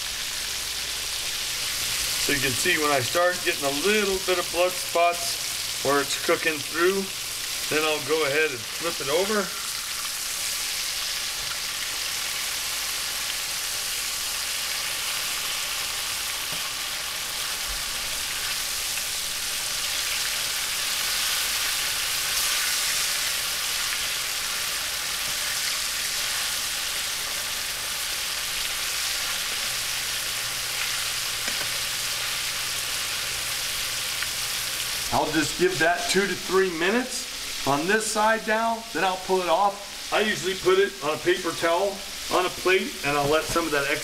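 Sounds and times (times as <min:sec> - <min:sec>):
oil sizzling in a skillet: 0:00.0 - 0:44.0.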